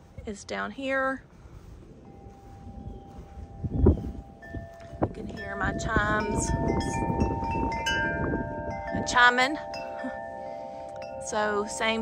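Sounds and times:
wind chimes ringing: 0:02.0 - 0:12.0.

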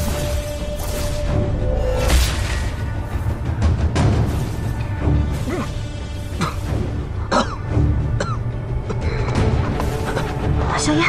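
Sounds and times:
dramatic background score: 0:00.0 - 0:11.0.

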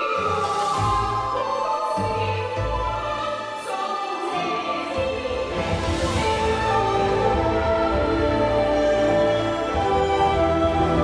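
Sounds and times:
person singing opera style: 0:00.0 - 0:11.0.

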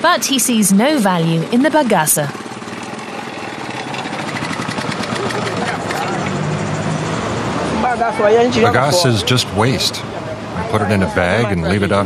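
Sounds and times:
juice press mechanical rattle: 0:01.8 - 0:06.6.

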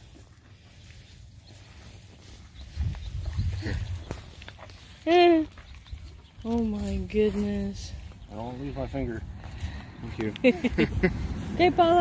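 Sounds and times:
low rumble: 0:10.6 - 0:12.0.

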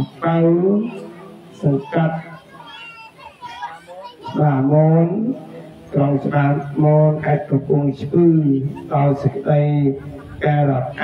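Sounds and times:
faint children's voices: 0:00.0 - 0:11.0.

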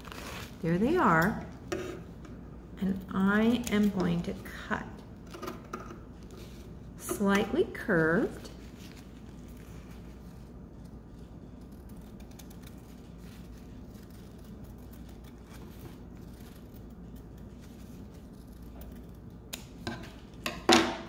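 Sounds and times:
low steady hum: 0:00.0 - 0:21.0
paper rustling: 0:08.5 - 0:10.4
scissors snipping paper: 0:11.6 - 0:19.8.

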